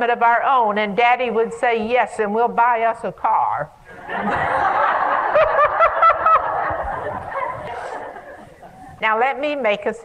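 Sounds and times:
audience laughing: 3.9 - 9.0.

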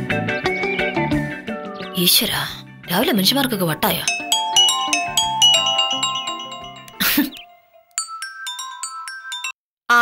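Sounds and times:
chiming mallet music: 3.8 - 9.6
mobile phone ringtone: 4.1 - 9.6.

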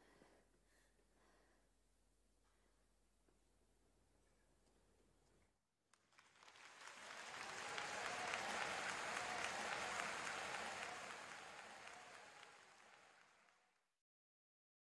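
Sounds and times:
large audience applauding: 6.0 - 14.0.

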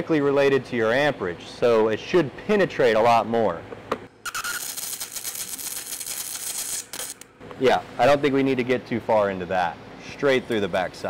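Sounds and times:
arc welding crackle and hiss: 4.2 - 8.0.

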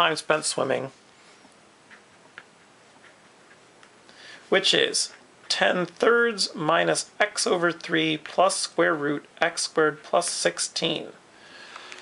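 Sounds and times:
marker ticking on paper: 1.9 - 4.0.

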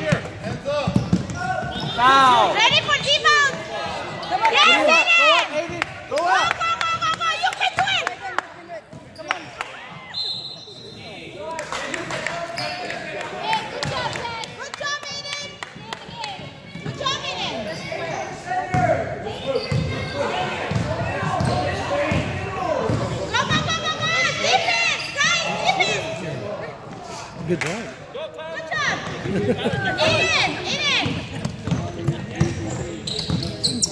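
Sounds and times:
voices echoing in a hall: 0.0 - 33.9.

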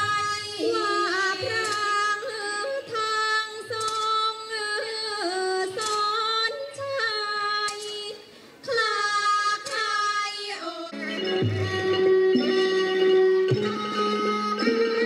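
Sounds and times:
woman singing: 0.0 - 15.0.

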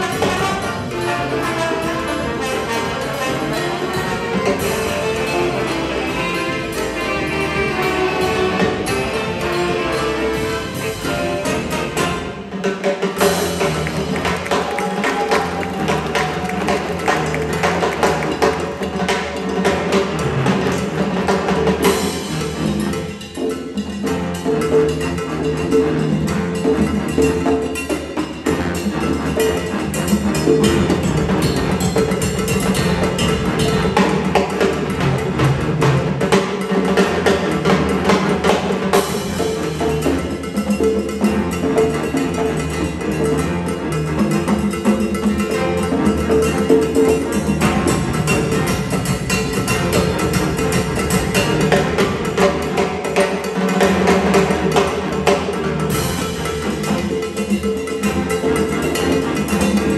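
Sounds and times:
saxophone and brass section: 0.0 - 12.8
big band playing salsa: 0.0 - 59.9
congas and percussion: 0.0 - 59.9.

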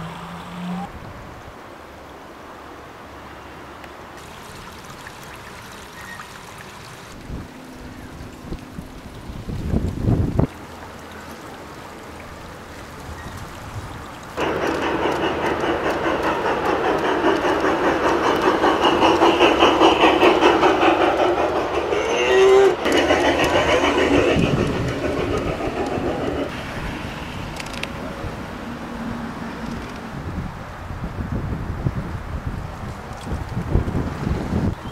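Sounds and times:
model steam locomotive rattling: 14.4 - 28.4
low rumble: 14.4 - 28.5.

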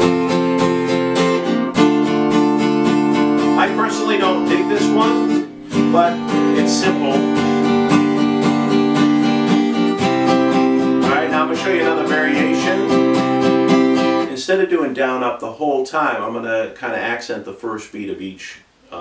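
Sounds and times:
acoustic guitar strumming: 0.0 - 14.7.

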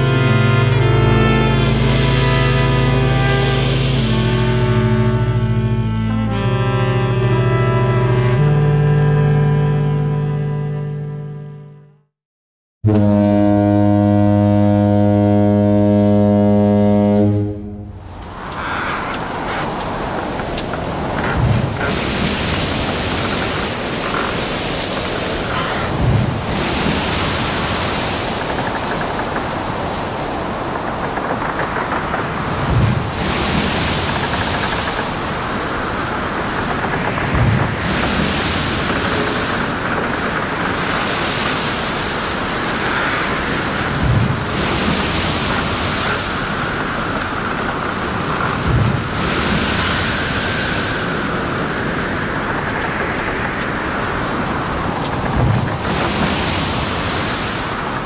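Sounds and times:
steady rushing noise: 0.6 - 5.7, 17.6 - 58.0
swell of hiss: 1.7 - 5.2.

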